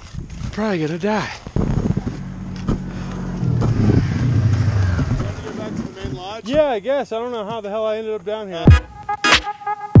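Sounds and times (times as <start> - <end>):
snowmobile engine running: 1.6 - 6.1.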